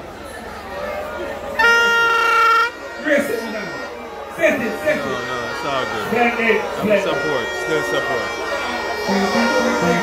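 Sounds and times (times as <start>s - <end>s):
crowd chatter: 0.0s - 10.0s
horn blast: 1.6s - 10.0s.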